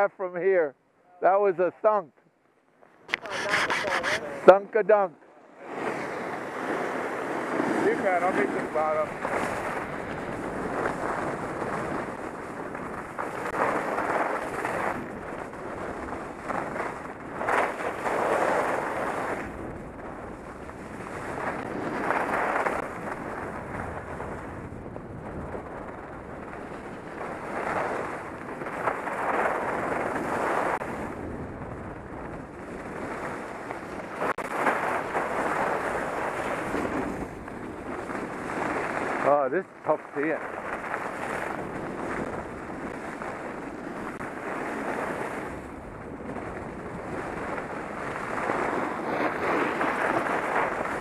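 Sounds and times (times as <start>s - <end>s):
wind rushing over microphone: 3.1s - 5.0s, 5.6s - 51.0s.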